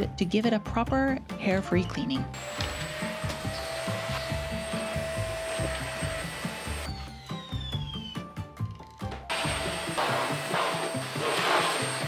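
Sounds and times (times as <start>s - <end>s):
vacuum cleaner running: 2.3s - 7.9s, 9.3s - 12.0s.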